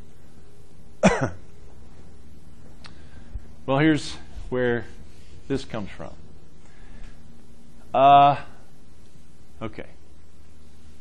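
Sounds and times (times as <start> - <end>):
man coughing: 1.0 - 1.4.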